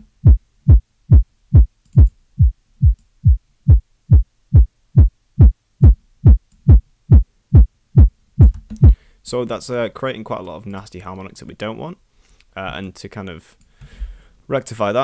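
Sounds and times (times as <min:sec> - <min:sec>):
distorted synth kick drum looping: 0:00.0 - 0:09.0.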